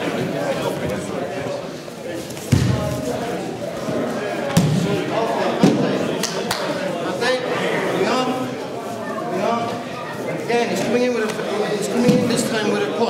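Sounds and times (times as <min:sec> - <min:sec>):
chatter in large hall: 0:00.0 - 0:13.0.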